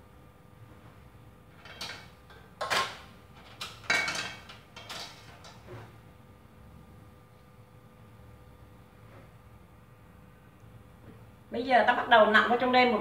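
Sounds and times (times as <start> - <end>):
dishes and utensils clattering: 1.6 - 5.9.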